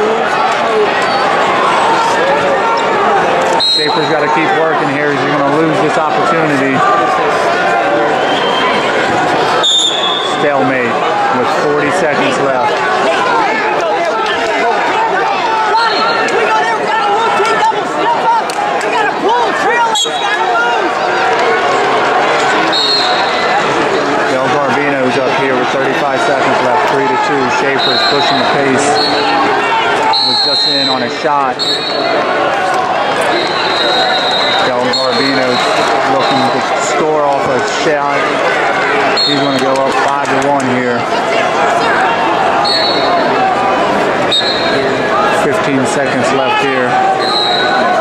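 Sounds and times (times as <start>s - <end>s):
crowd shouting: 0.0s - 48.0s.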